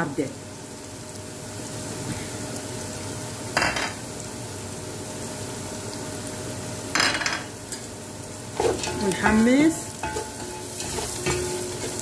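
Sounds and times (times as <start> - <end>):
onions frying in oil: 0.0 - 12.0
spices clattering into pot: 3.6 - 4.0, 6.9 - 7.9, 8.6 - 12.0.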